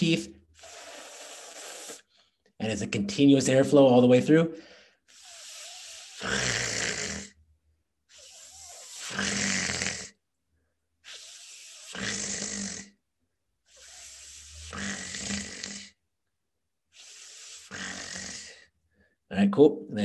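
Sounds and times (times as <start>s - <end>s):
man saying fricative sounds: 0.0s - 0.4s, 2.6s - 4.6s, 19.3s - 20.0s.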